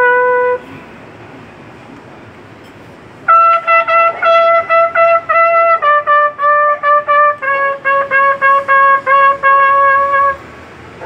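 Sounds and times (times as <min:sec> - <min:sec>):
trumpet long note: 0:00.0 - 0:00.7, 0:03.3 - 0:10.5
low background noise: 0:00.0 - 0:11.0.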